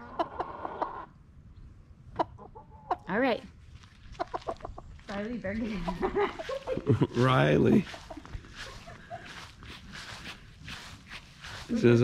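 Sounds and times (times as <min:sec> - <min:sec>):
rooster clucking: 0:00.0 - 0:01.1, 0:04.2 - 0:04.8.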